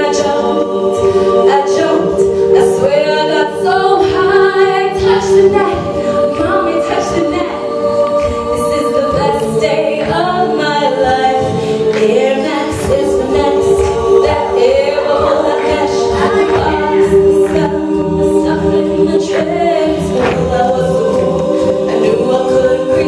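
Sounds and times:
women singing held chords: 0.0 - 23.0.

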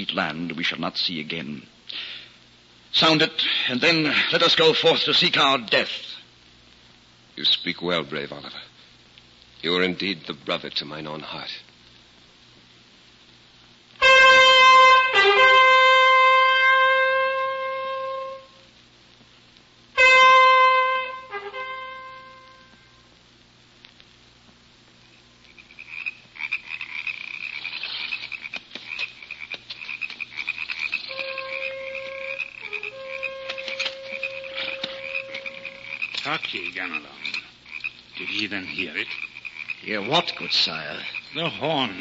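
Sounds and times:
distant horn long notes: 14.0 - 18.7, 20.0 - 23.0, 31.1 - 36.0
horn blast: 14.0 - 18.7, 20.0 - 23.0, 31.1 - 36.0
chirring night creatures: 25.0 - 42.0.

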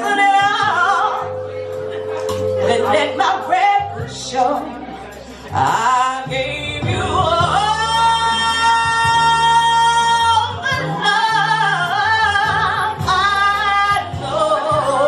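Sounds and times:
woman singing into microphone: 0.0 - 15.0.

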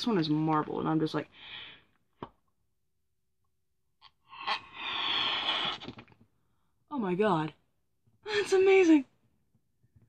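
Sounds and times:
person blowing into balloon: 4.3 - 6.2.

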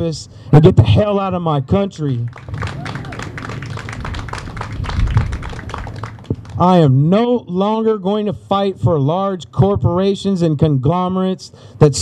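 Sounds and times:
audience applause: 2.3 - 6.6.

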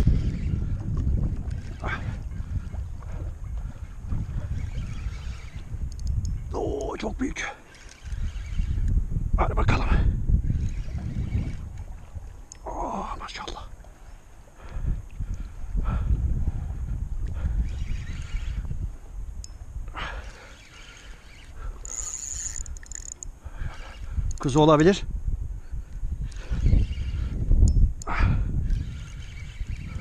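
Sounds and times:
wind rumble on microphone: 0.0 - 30.0.

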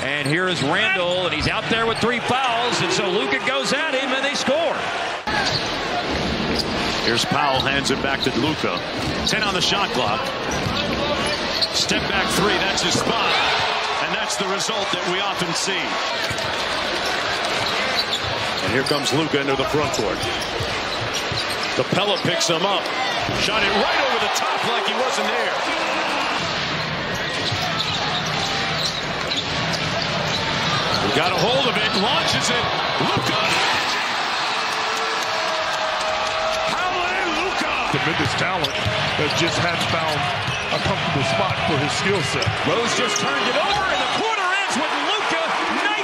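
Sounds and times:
arena crowd noise: 0.0 - 46.0.

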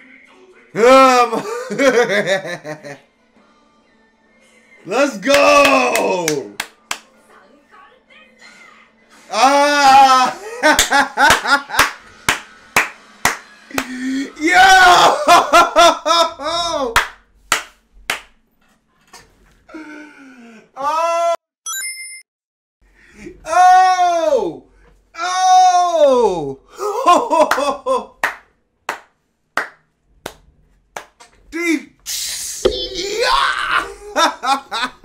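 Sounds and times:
person clapping hands slowly: 5.4 - 7.1, 10.7 - 14.0, 17.0 - 18.3, 27.5 - 30.4.

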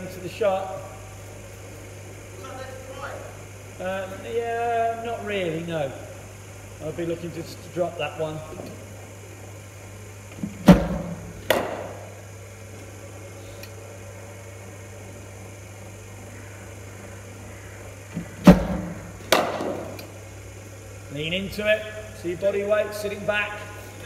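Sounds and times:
bowling machine firing thump: 10.4 - 12.1, 18.2 - 20.0
ball cracking on bat: 10.6 - 12.0, 18.4 - 20.1.

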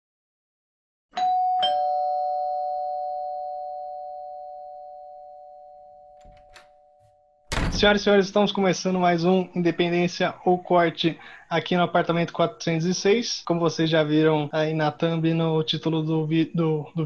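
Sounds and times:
two-note doorbell chime: 1.2 - 7.2
person speaking: 7.6 - 17.0.

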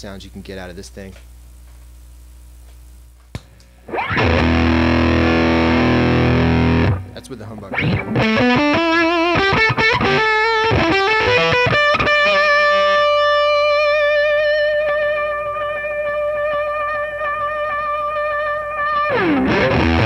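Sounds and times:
electric guitar lead line: 3.8 - 20.0
fuzzed electric guitar chord: 3.8 - 20.0.

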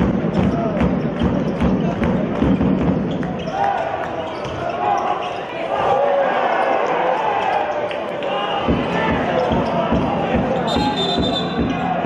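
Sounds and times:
sneaker squeals: 0.3 - 11.9.

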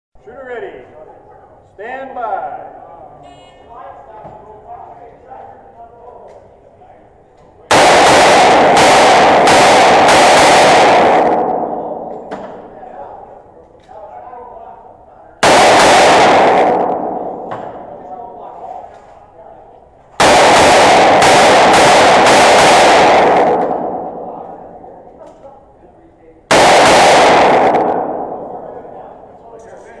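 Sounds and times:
revolver shots with reverberation: 7.7 - 13.0, 15.4 - 18.3, 20.2 - 25.0, 26.5 - 29.1.

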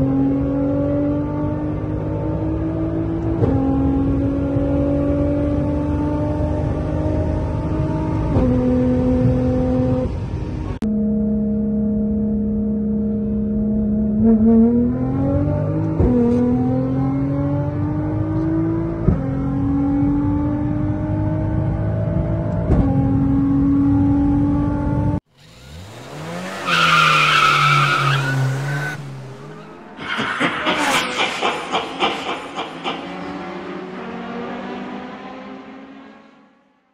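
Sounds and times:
sports car engine at full throttle: 0.0 - 36.9
engine crackles: 25.3 - 34.2
high squeal: 26.6 - 33.6.

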